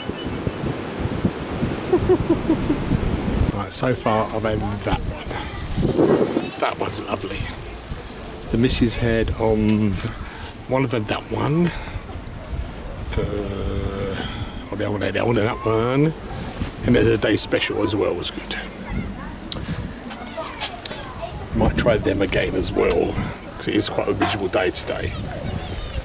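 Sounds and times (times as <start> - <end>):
wind buffeting microphone: 0.0 - 26.0
man humming hesitantly: 13.1 - 14.6.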